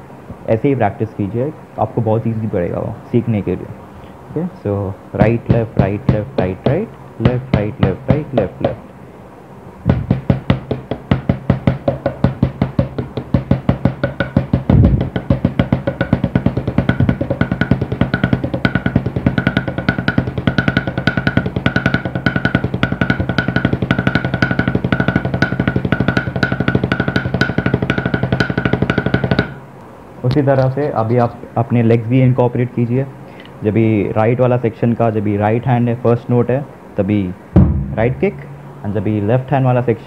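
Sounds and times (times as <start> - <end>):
drumsticks on practice pad: 5.2 - 9.0, 9.8 - 29.7
low drum thump: 9.9 - 29.6, 37.6 - 38.7.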